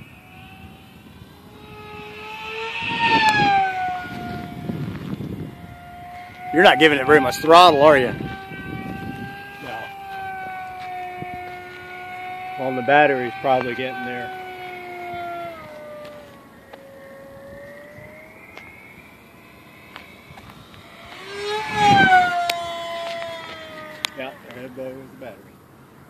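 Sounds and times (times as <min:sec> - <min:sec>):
model plane motor whining: 0:00.0 - 0:25.4.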